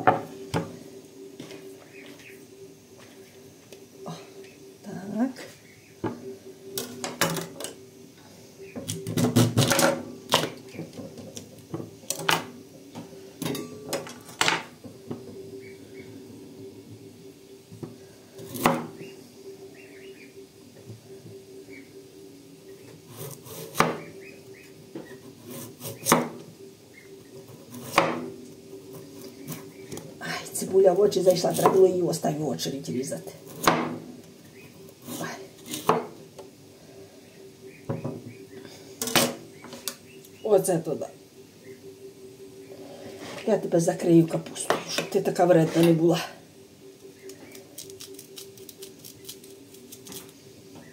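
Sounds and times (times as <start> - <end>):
steady low hum: 0.0 - 50.9.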